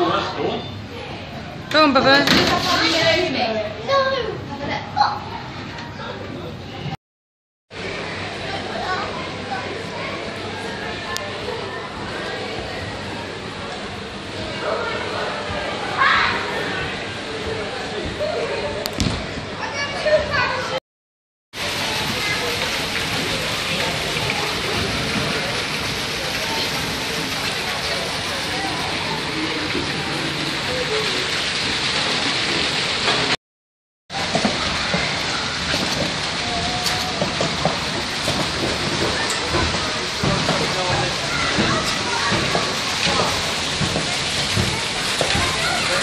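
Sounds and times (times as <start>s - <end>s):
water pouring and splashing: 2.1s - 3.5s, 21.6s - 33.4s, 34.1s - 46.0s
people chattering: 7.8s - 20.8s, 21.6s - 31.6s, 36.3s - 46.0s.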